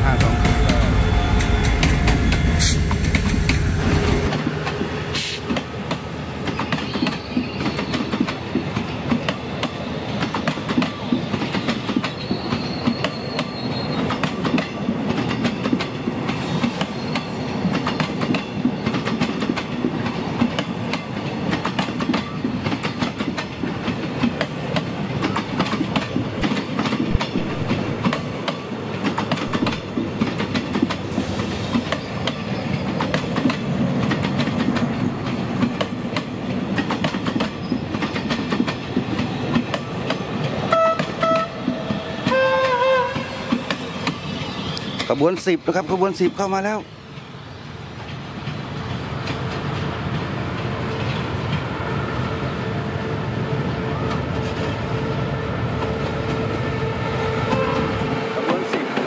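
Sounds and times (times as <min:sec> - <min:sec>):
train coaches rumbling past: 0:00.0 - 0:59.0
wheels clacking over rail joints: 0:00.2 - 0:45.5.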